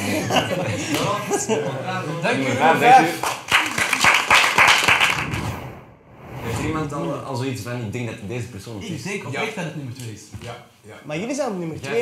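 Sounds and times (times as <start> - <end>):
people clapping: 0.8 - 1.2, 3.0 - 5.4.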